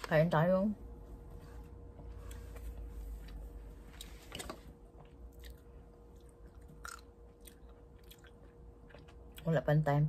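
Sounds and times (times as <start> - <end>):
person chewing with soft clicks: 3.9 - 9.5.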